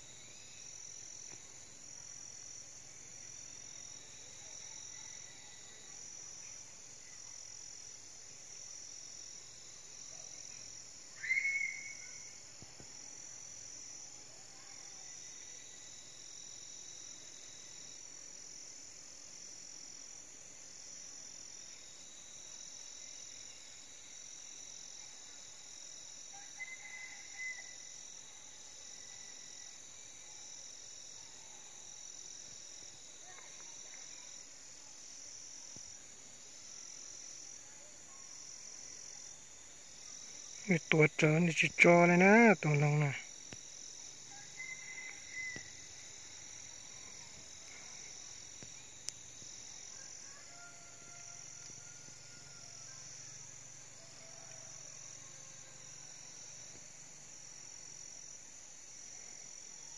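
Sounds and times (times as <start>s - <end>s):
faint steady tone: 0.0s - 59.9s
pulsing insect chorus: 0.0s - 59.9s.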